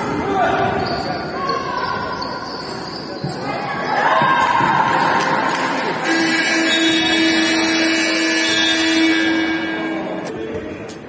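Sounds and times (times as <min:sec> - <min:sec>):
scoreboard horn long tone: 0:06.0 - 0:10.4.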